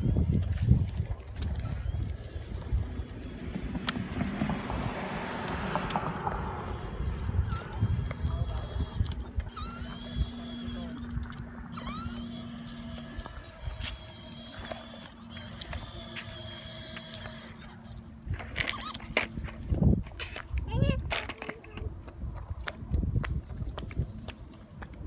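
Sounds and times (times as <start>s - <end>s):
steady low hum: 0.0s - 20.7s
scooter rolling on concrete: 0.0s - 25.0s
short rising squeaks: 1.6s - 19.6s.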